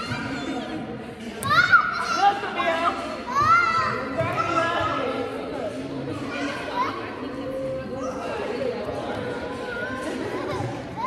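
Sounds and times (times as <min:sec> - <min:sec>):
adults talking: 0:00.0 - 0:11.0.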